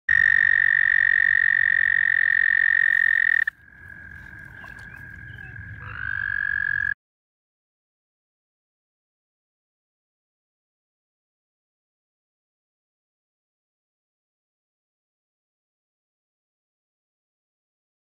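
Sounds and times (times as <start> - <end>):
close loud toad trill: 0.1 - 7.0
fainter lower toad trill: 0.1 - 7.0.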